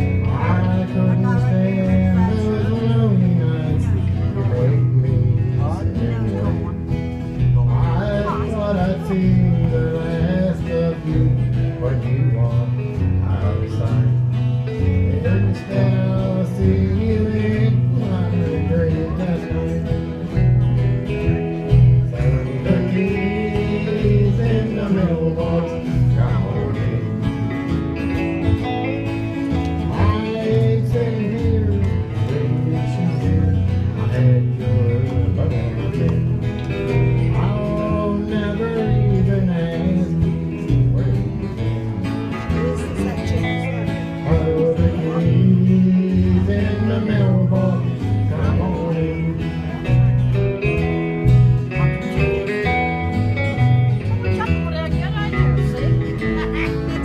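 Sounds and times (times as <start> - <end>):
country band playing: 0.0 - 57.0
electric guitar: 0.0 - 57.0
strummed acoustic guitar: 0.0 - 57.0.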